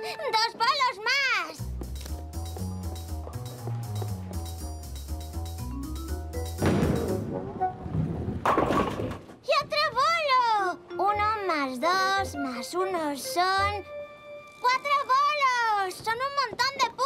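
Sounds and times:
background music with bouncing bass: 1.6 - 7.8
bowling ball striking pins: 6.6 - 9.4.

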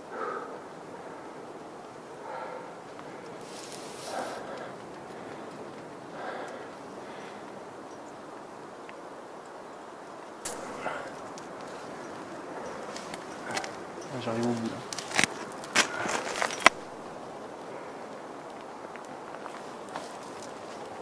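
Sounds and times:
person breathing heavily: 0.0 - 7.8, 10.5 - 14.0, 14.8 - 16.6
wind hiss on microphone: 0.0 - 21.0
handling rustle: 3.0 - 7.2, 10.5 - 17.2, 18.5 - 21.0.

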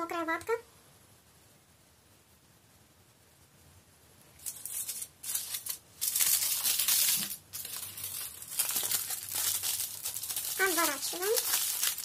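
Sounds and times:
aluminium foil crinkling: 4.4 - 12.0.

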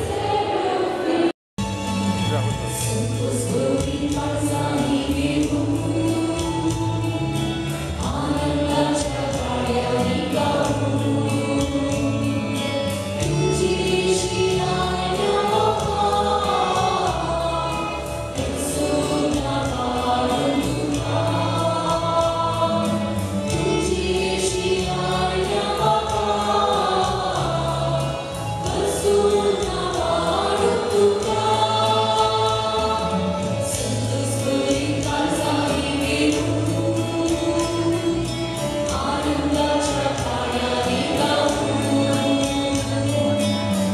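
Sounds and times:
choir singing a hymn: 0.0 - 1.3, 2.8 - 43.9
instrumental accompaniment: 1.6 - 43.9.

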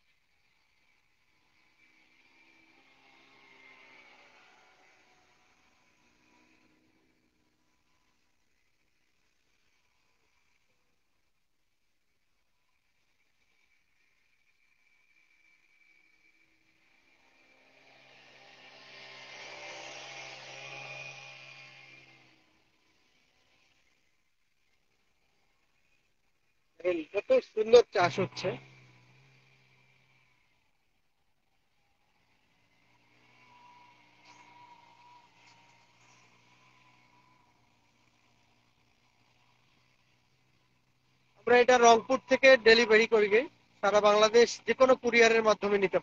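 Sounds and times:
tiller engine running: 16.8 - 23.8, 32.0 - 45.9.

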